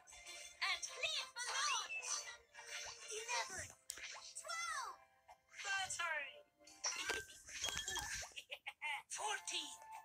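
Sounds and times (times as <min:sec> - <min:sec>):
children's music from television: 0:00.0 - 0:10.0.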